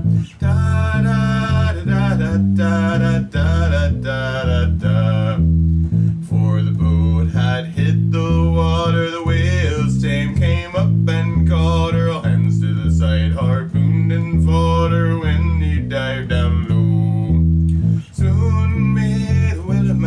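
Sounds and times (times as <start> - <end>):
man singing: 0.0 - 5.5, 6.2 - 20.0
electric bass guitar plucked: 0.0 - 20.0.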